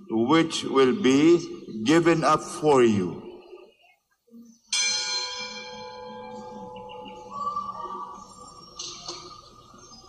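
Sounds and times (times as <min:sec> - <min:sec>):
altar bell ringing: 0:04.7 - 0:08.2
steady ringing tone: 0:04.7 - 0:10.0.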